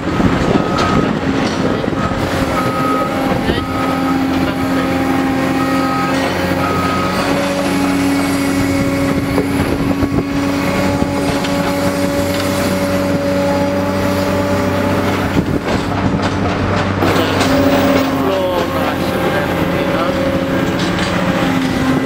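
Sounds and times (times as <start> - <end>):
excavator diesel engine running: 0.0 - 22.0
warning alarm beeping: 0.5 - 14.8.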